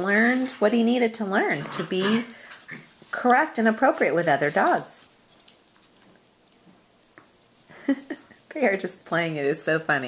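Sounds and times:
dog paws clicking on tiles: 0.0 - 10.0.

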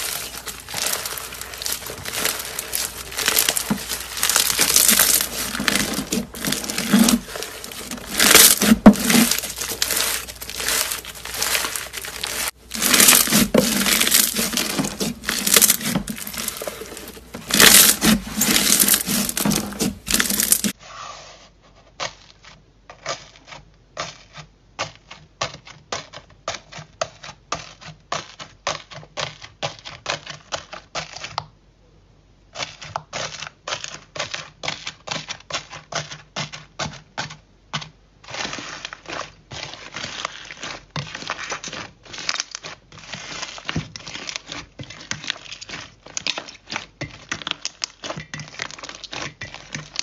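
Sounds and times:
crunchy slime squeezed: 0.0 - 20.8.

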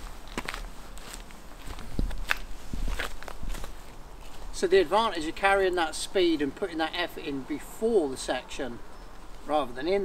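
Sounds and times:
footsteps crunching on dead leaves: 0.0 - 5.7.

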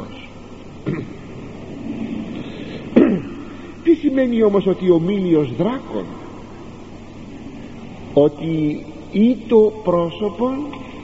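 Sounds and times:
person speaking: 0.0 - 6.5
recording hiss and hum: 0.0 - 11.0.

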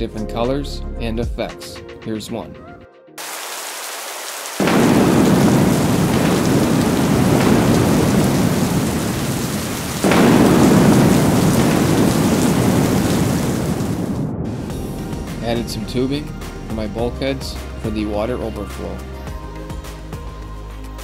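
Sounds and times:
steady rain: 3.2 - 15.8
rolling thunder: 4.6 - 16.8.

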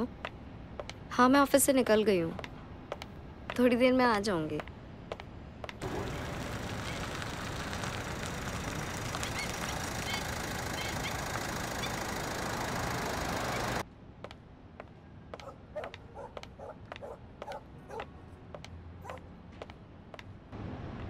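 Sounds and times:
car engine running: 5.8 - 13.8.

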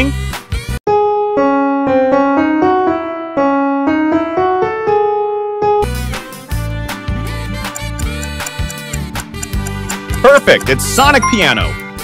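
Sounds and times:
slow piano melody: 0.9 - 6.0.

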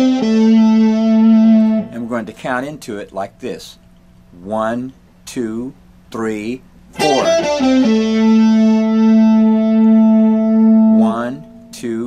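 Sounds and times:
electric guitar sustained note: 0.0 - 2.4, 7.0 - 12.0.

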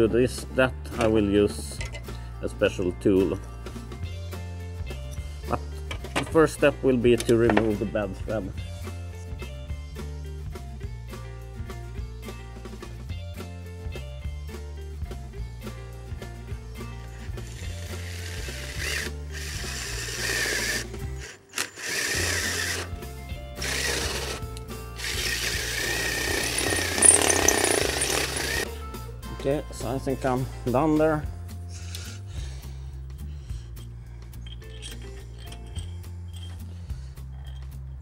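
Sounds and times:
background music: 0.0 - 38.0
cordless drill whining: 17.2 - 23.0, 23.6 - 28.7.

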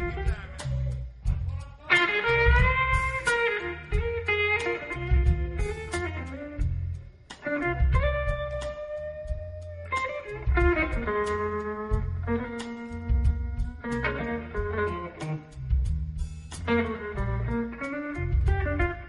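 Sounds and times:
electric guitar solo: 0.0 - 0.6, 1.9 - 6.8, 7.4 - 15.6, 16.6 - 19.0
blues band playing: 0.0 - 19.0.

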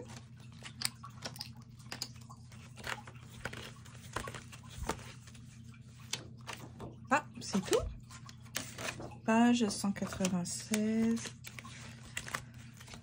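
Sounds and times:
book pages turning: 2.4 - 6.9, 8.0 - 13.0.

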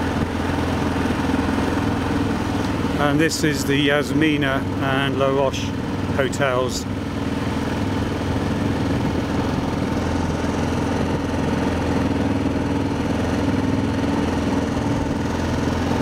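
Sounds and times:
motorcycle engine running: 0.0 - 16.0.

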